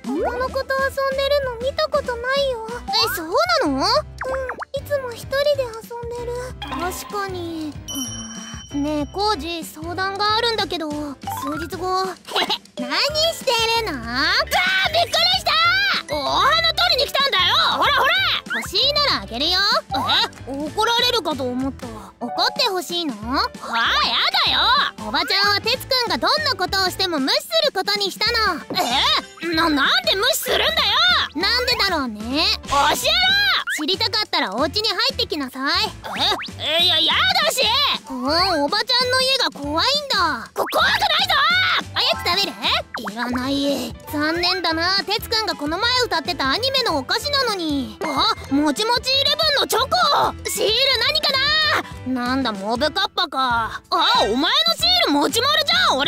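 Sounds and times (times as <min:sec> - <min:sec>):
child speaking: 0:00.0 - 0:07.8, 0:08.8 - 0:12.2, 0:12.8 - 0:36.0, 0:36.7 - 0:56.0
light background music: 0:00.0 - 0:56.0
boy talking: 0:00.1 - 0:07.8, 0:12.8 - 0:35.9, 0:36.6 - 0:56.0
woman speaking: 0:00.1 - 0:07.8, 0:08.7 - 0:12.2, 0:12.8 - 0:35.9, 0:42.0 - 0:49.9
woman talking: 0:00.1 - 0:07.8, 0:08.7 - 0:12.2, 0:12.8 - 0:36.0, 0:36.9 - 0:56.0.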